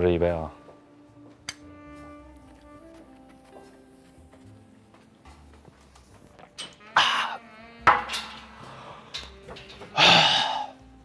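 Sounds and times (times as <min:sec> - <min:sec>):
man gasping and exhaling: 0:09.9 - 0:10.8
man groaning: 0:10.0 - 0:10.7.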